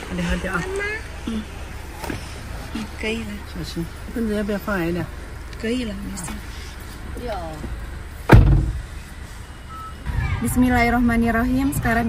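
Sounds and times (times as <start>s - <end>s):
car door shutting: 8.2s - 9.0s.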